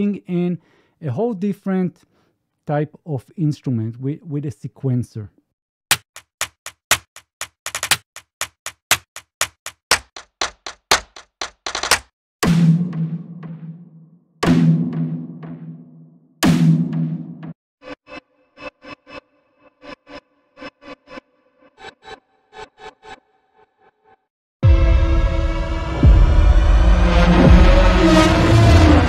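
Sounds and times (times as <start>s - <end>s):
sharp ticks speeding up: 5.9s - 12.1s.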